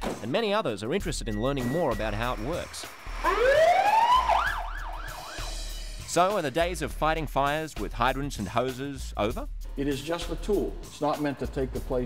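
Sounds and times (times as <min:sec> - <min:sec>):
fire engine siren wailing: 0:03.0 - 0:05.6.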